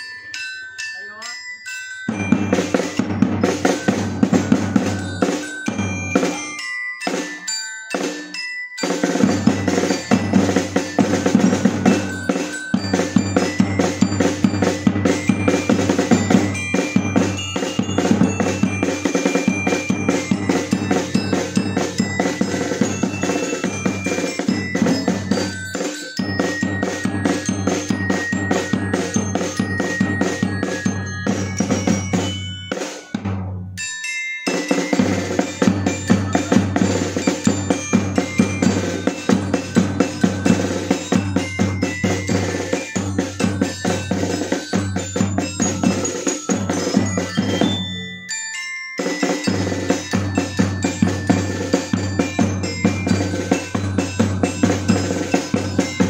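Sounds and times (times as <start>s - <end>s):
xylophone playing a tune: 0.0s - 56.0s
snare and bass drums beating: 2.1s - 7.4s, 8.8s - 33.5s, 34.5s - 48.0s, 49.1s - 56.0s.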